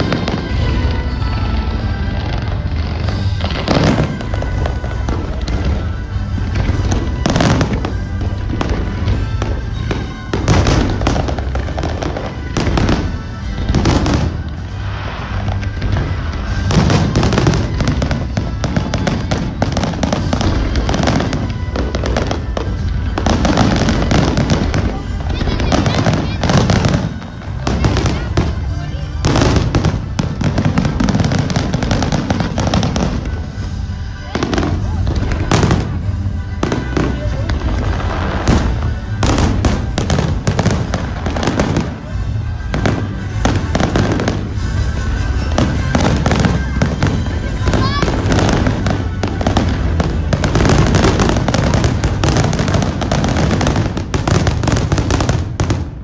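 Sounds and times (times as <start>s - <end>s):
fireworks bursts and crackle: 0.0s - 56.0s.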